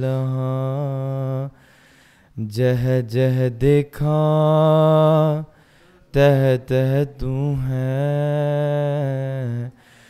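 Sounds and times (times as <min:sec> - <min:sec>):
man chanting a hymn: 0:02.4 - 0:09.8.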